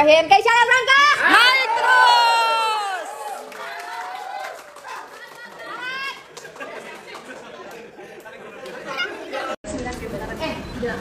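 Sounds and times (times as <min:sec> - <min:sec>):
people chattering: 0:04.7 - 0:11.0.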